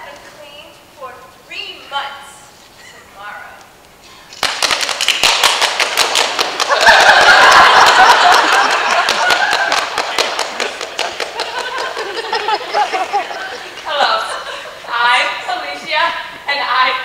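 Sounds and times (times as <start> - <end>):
people clapping: 4.3 - 14.0
people cheering: 6.6 - 14.3.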